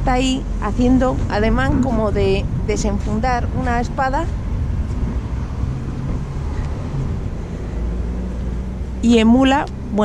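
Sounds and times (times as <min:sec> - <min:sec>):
faint engine hum: 0:00.0 - 0:10.0
street traffic rumble: 0:00.0 - 0:10.0.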